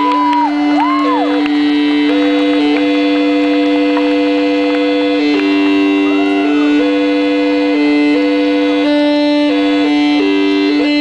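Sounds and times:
rock band sustained drone: 0.0 - 11.0.

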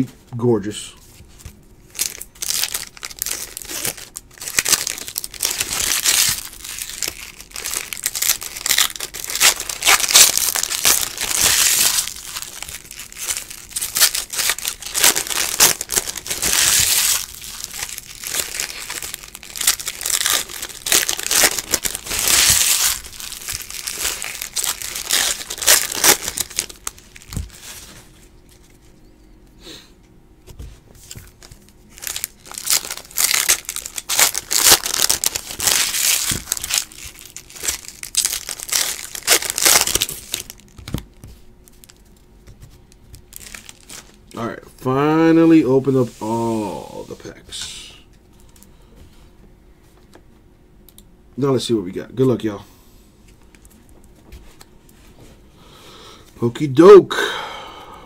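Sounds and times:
foil wrappers crinkling and tearing: 1.8 - 28.9, 31.0 - 44.4.

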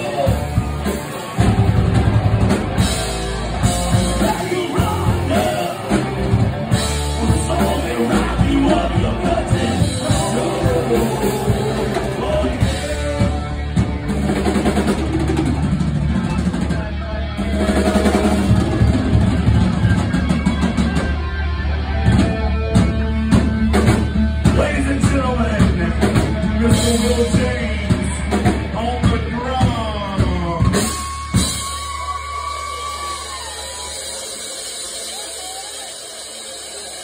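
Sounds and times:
distorted electric guitars: 0.0 - 37.0
loud rock band playing: 0.0 - 37.0.

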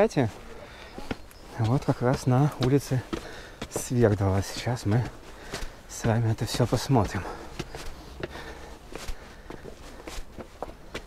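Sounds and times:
footsteps on concrete stairs: 0.0 - 11.0.

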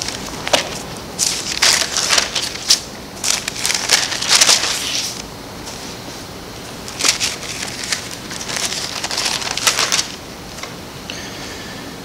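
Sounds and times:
book pages rustling: 0.0 - 6.2, 6.9 - 10.7.

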